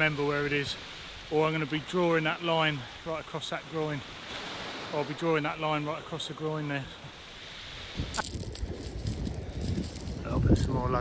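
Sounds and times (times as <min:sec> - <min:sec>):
faint surf: 0:00.0 - 0:11.0.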